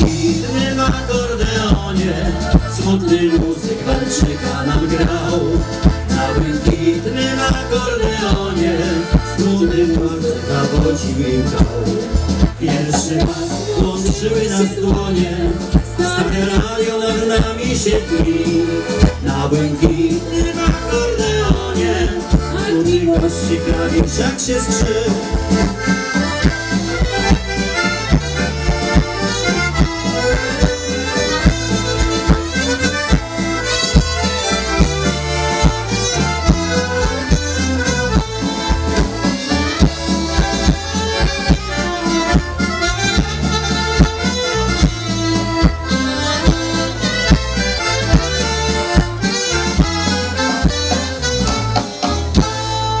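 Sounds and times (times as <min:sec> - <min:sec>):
accordion: 0:00.0 - 0:53.0
folk dance band playing: 0:00.0 - 0:53.0.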